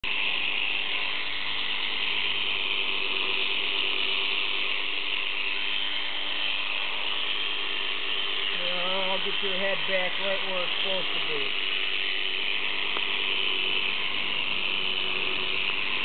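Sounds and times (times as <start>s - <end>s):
electric shearing handpiece buzzing: 0.0s - 16.0s.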